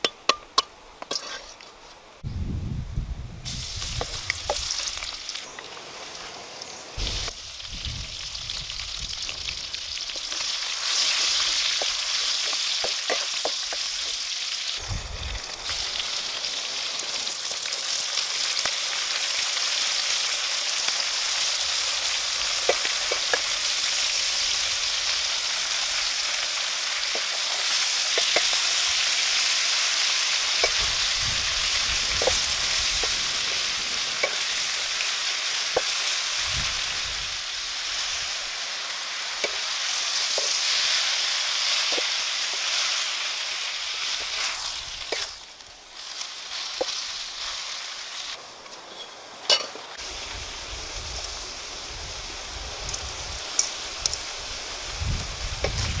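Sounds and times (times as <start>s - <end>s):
oil sizzling in a wok: 3.4s - 56.0s.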